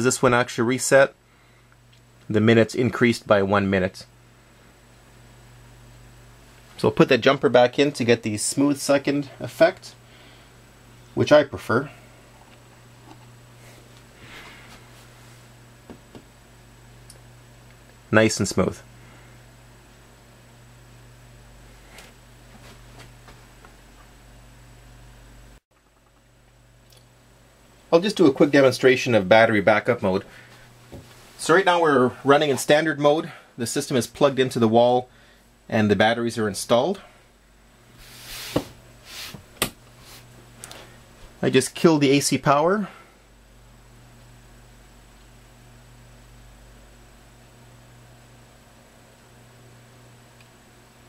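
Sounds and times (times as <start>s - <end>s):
steady low hum: 0.0s - 51.0s
soft rustle: 38.0s - 41.4s.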